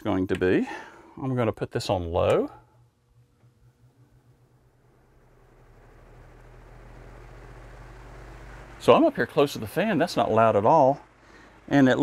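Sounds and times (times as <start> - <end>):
fan rush of moving air: 4.5 - 12.0.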